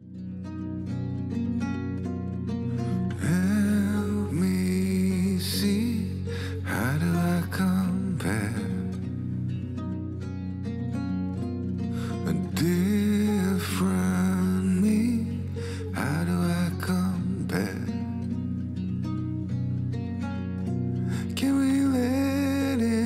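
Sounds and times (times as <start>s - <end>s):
plucked strings: 0.0s - 23.0s.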